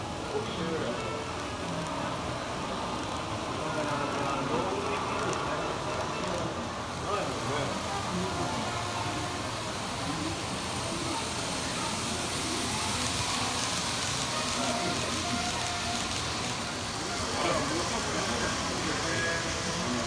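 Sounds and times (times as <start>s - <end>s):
model train rolling on track: 0.0s - 20.0s
indistinct background voices: 1.2s - 20.0s.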